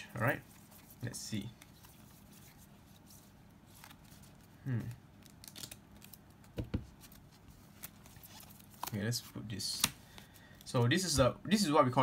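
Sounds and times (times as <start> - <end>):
plastic card sleeves rustling: 0.4 - 4.5, 5.2 - 10.9.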